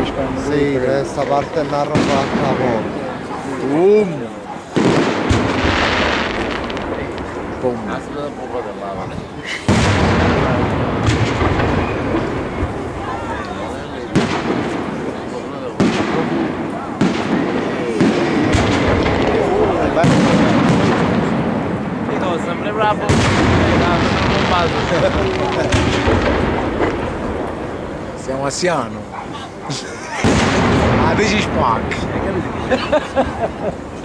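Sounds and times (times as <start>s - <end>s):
firework shells bursting: 4.7s - 8.4s, 9.6s - 22.1s, 23.1s - 28.6s, 30.2s - 32.2s
long rumbling echo: 4.8s - 28.6s, 30.2s - 34.0s.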